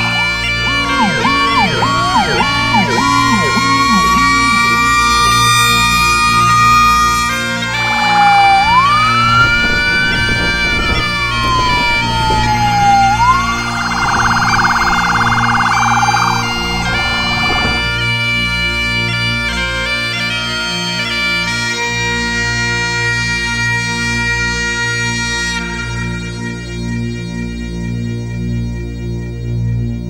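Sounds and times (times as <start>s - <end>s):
background music: 0.0s - 9.9s
emergency vehicle siren: 0.0s - 20.6s.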